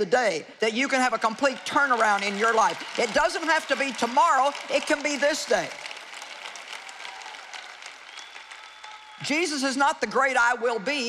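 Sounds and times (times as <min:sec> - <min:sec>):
audience applause: 0:01.0 - 0:09.3.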